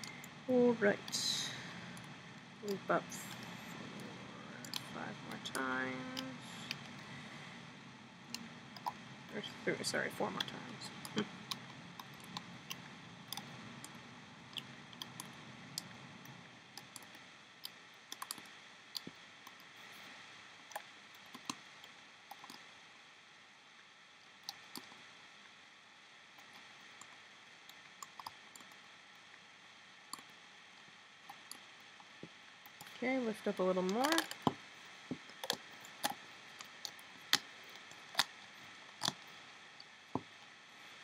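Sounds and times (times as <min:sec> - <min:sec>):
faint steady hiss: 0:00.0 - 0:41.0.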